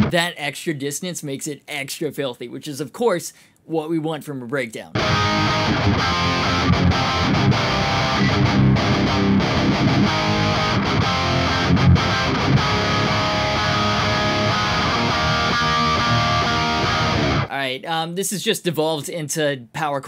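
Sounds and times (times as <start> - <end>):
distorted electric guitar chugs: 5.0 - 17.5.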